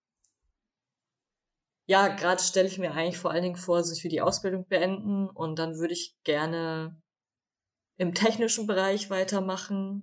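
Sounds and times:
woman speaking: 1.9 - 7.0, 8.0 - 10.0.

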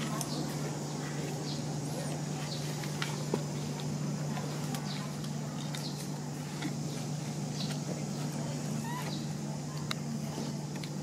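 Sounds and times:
steady low hum: 0.0 - 11.0
high animal squeaks: 8.8 - 9.3.

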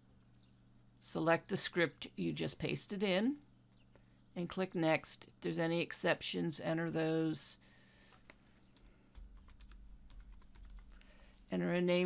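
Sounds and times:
computer keyboard keystrokes: 8.2 - 11.0.

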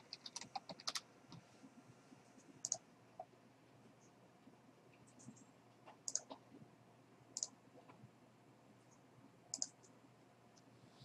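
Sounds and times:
computer mouse clicks: 0.1 - 1.4, 2.6 - 2.8, 5.1 - 6.4, 7.4 - 7.6, 9.5 - 9.9.

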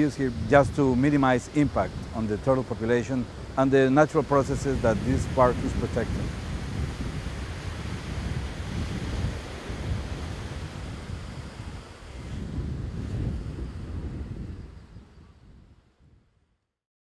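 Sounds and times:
surf washing on sandy beach: 0.0 - 15.8
wind rumbling on microphone: 0.0 - 16.6.

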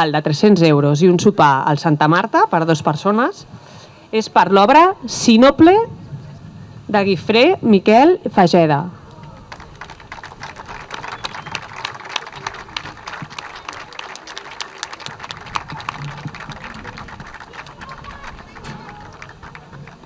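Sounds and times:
audience applauding: 9.2 - 20.0.

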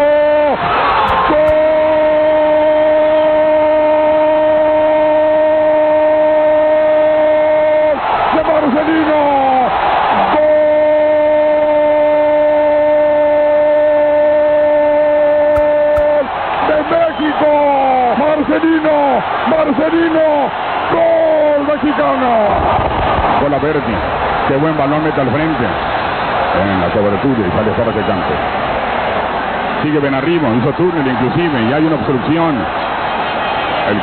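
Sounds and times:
commentator's long goal shout: 0.0 - 22.6
crowd noise: 0.0 - 34.0.

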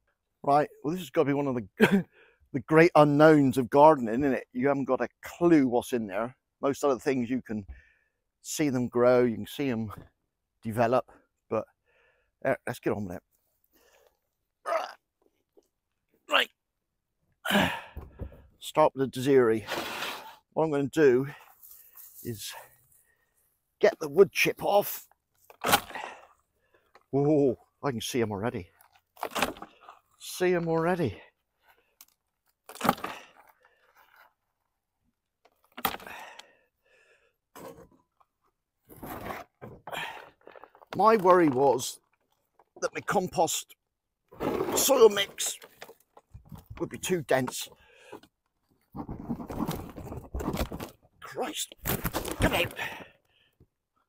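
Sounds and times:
mulch scraped and crunched by hand: 19.6 - 20.4, 25.4 - 26.2, 38.8 - 41.6, 44.3 - 47.6, 48.8 - 51.0.

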